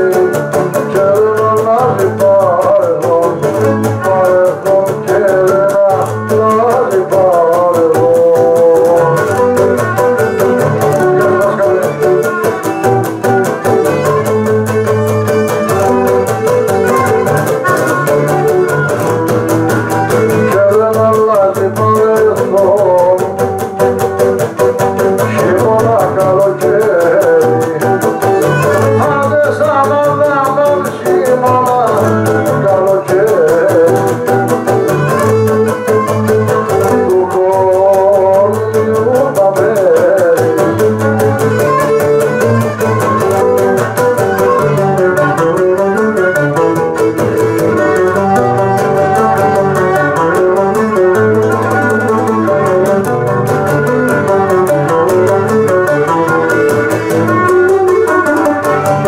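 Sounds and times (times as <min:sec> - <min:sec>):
plucked lute chords and bass: 0:00.0 - 0:59.0.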